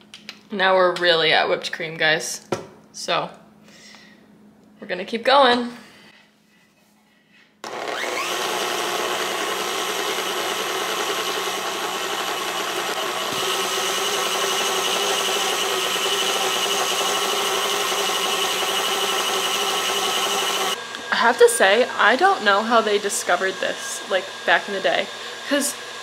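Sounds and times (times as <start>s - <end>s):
stand mixer motor running: 7.6s - 21.8s, 22.7s - 26.0s
whisk beating cream: 7.7s - 20.8s.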